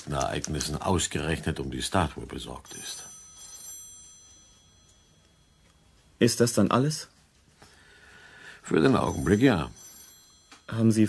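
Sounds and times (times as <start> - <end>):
bright metallic ring: 2.6 - 7.2, 8.6 - 11.0.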